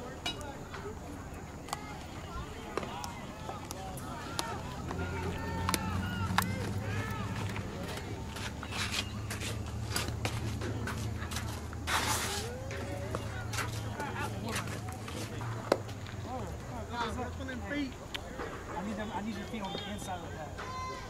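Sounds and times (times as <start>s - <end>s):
distant voices of players: 0.0s - 21.0s
footsteps on dirt: 1.6s - 16.7s.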